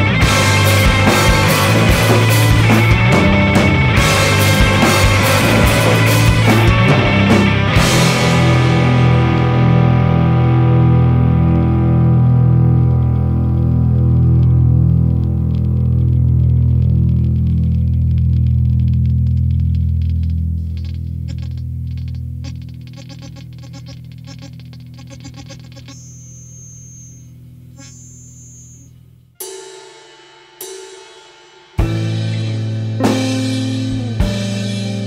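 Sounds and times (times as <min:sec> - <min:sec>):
rock song: 0:00.0 - 0:19.2, 0:29.8 - 0:35.0
distorted electric guitar chord: 0:00.0 - 0:35.0.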